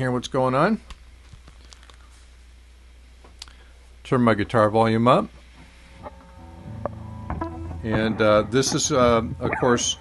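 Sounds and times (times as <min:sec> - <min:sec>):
low electrical hum: 0:00.0 - 0:10.0
headphones handled clicks and rustles: 0:00.9 - 0:02.2.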